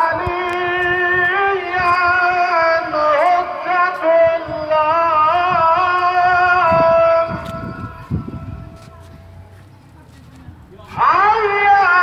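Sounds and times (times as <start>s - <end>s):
person singing long held notes: 0.0s - 8.8s.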